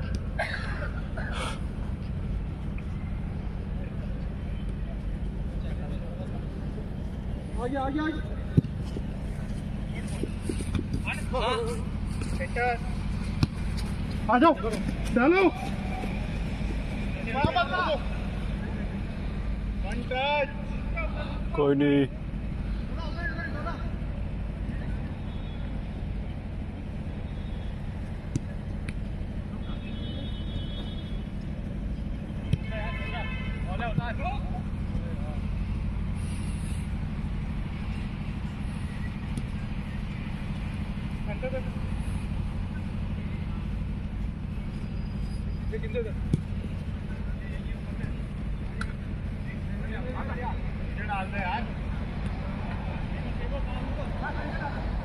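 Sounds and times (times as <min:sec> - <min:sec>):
steady low hum: 0:00.0 - 0:55.0
ball being kicked: 0:08.5 - 0:09.0, 0:13.3 - 0:15.2, 0:46.2 - 0:46.7
players shouting: 0:14.2 - 0:19.3.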